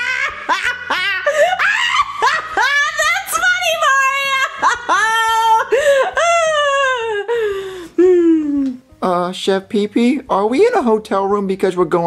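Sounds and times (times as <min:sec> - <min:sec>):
high-pitched laughter: 0:00.0 - 0:07.3.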